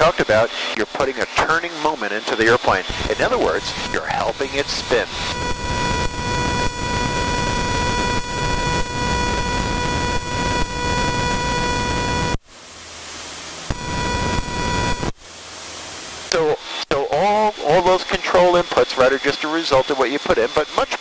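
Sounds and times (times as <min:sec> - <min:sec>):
light aircraft engine and airflow: 0:00.0 - 0:16.4
high stall warning horn: 0:02.9 - 0:12.3.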